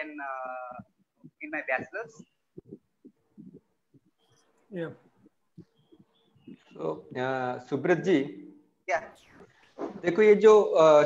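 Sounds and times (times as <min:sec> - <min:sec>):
faint steady hum: 0:00.0 - 0:10.0
faint low thuds: 0:00.6 - 0:04.3, 0:04.9 - 0:07.3.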